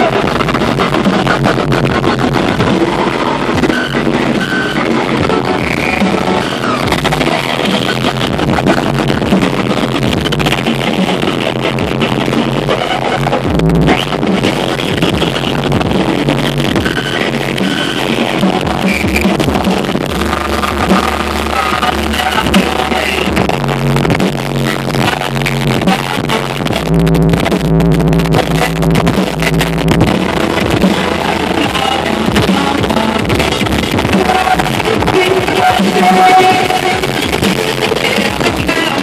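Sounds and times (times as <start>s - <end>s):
loud music with heavy bass: 0.0s - 39.0s.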